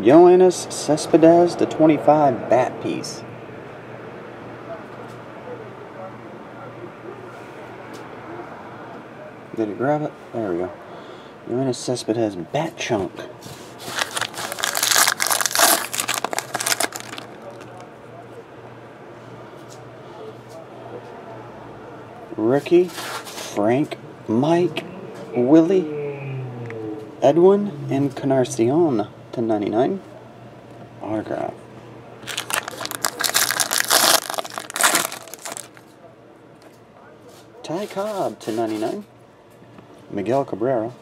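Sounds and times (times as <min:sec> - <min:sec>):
foil wrapper crinkling and tearing: 0:13.8 - 0:17.8, 0:32.2 - 0:35.8.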